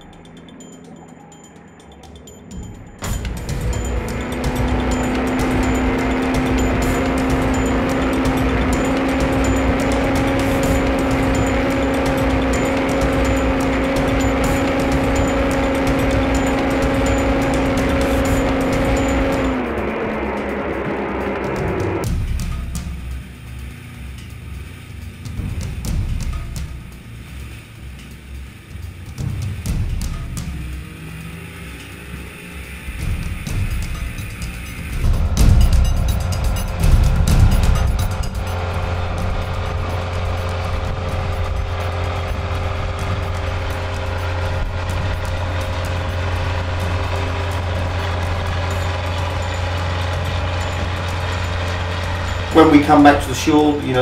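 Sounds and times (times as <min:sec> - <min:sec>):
background music: 0:00.0 - 0:54.0
outboard motor and tractor engines: 0:00.0 - 0:54.0.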